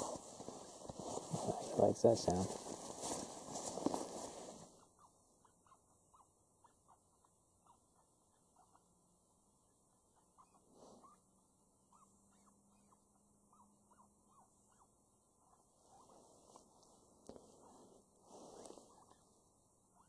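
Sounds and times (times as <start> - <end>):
faint high squeaks: 11.9 - 16.6, 17.5 - 19.3.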